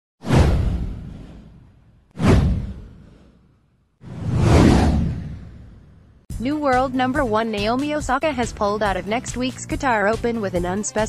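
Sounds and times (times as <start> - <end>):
whoosh sound effect: 0.2 - 6.2.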